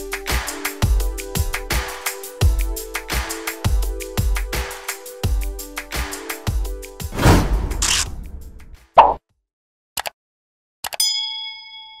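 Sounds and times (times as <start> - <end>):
background music: 0.0 - 8.9
pop sound effect: 9.0 - 9.2
bell-like notification ding: 11.0 - 12.0.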